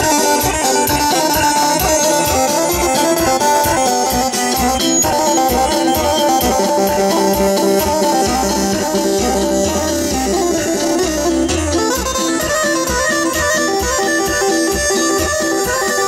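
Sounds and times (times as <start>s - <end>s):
folk dance music over loudspeakers: 0.0s - 16.0s.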